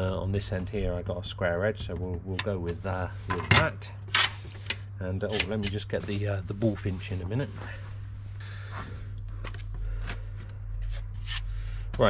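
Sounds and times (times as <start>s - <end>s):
steady low hum: 0.0s - 12.0s
items rustling and scraping: 2.5s - 3.8s, 4.4s - 12.0s.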